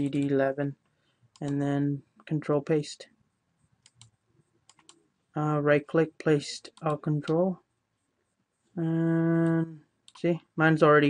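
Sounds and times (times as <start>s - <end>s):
mouse and keyboard clicks: 3.8s - 5.0s.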